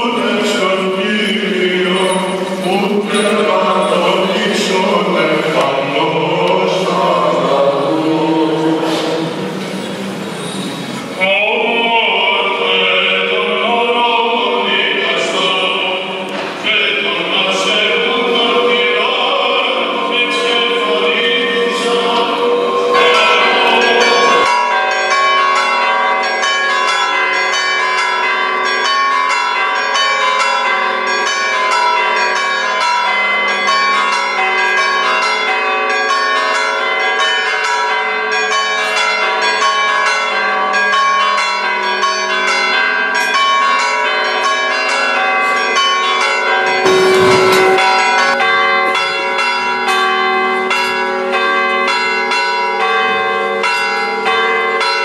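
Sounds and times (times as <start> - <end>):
church bells pealing: 0.0 - 55.0.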